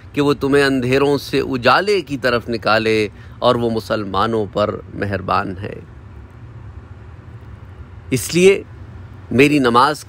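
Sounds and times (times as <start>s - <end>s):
faint hiss: 0.0s - 10.0s
steady low hum: 0.0s - 10.0s.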